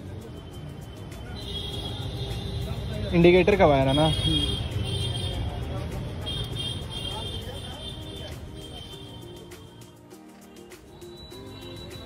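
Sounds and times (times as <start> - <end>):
traffic rumble: 0.0 - 9.4
faint indistinct voices: 0.0 - 12.0.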